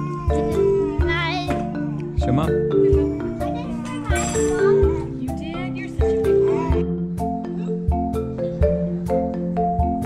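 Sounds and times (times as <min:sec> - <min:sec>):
child crying high-pitched: 0:00.0 - 0:02.0, 0:02.7 - 0:05.2, 0:06.2 - 0:07.0
mallet percussion music: 0:00.0 - 0:10.0.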